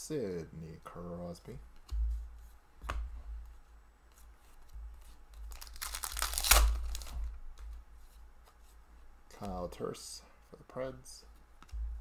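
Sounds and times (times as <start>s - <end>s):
foil pack tearing open: 5.5s - 7.1s.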